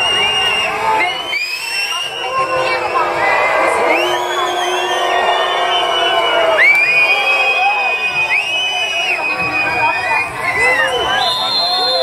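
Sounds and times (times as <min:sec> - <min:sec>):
crowd shouting and whooping: 0:00.0 - 0:12.0.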